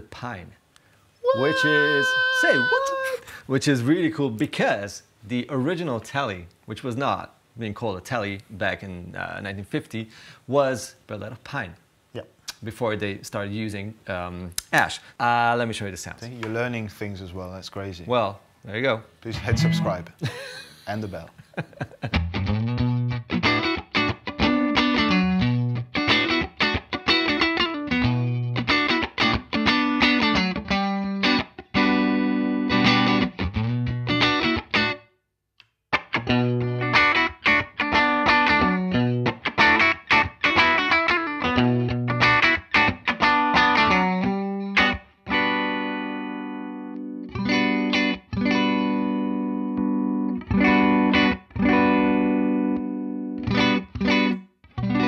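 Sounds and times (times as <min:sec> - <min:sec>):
ringing guitar chords: 0:01.3 - 0:02.9, 0:19.4 - 0:20.1, 0:22.1 - 0:35.0, 0:36.0 - 0:55.0
electric guitar picked riff: 0:19.4 - 0:20.0, 0:22.1 - 0:35.0, 0:35.9 - 0:55.0.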